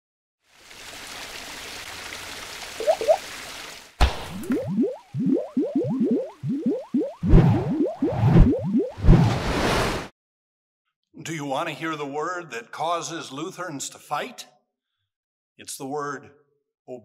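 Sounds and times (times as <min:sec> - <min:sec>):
quick upward blips: 0:02.8 - 0:03.2, 0:04.3 - 0:09.3
sudden hit: 0:04.0 - 0:04.5
rising squelchy glides: 0:05.4 - 0:09.4.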